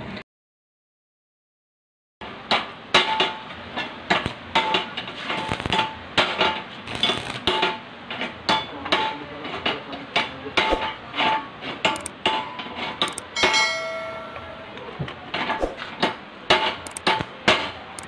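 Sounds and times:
hammer striking metal: 2.5 - 9.2, 10.2 - 14.8, 15.4 - 17.8
long metallic ringing tone: 13.3 - 15.0.

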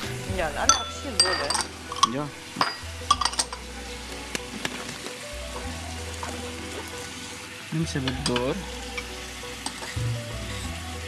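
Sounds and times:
soft background music: 0.0 - 11.0
fish sizzling in a frying pan: 0.5 - 11.0.

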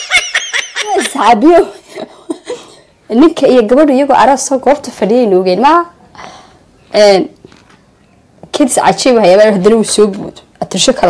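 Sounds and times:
high-pitched giggling: 0.0 - 2.9
woman's voice: 0.8 - 6.0, 6.9 - 7.4, 8.4 - 11.0.

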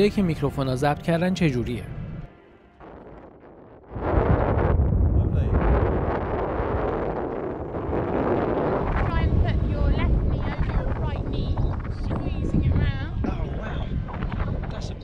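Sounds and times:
wind buffeting microphone: 2.8 - 15.0.

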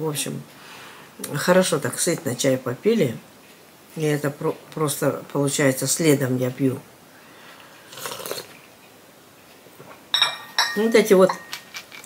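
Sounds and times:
slurping sip of tea: 7.8 - 8.6.

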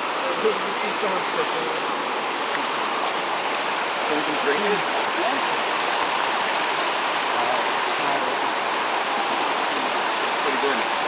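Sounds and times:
stream water over rocks: 0.0 - 11.0.

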